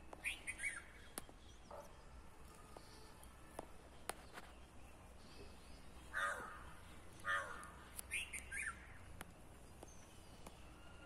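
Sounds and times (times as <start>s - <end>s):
crows cawing: 6.1s - 7.8s.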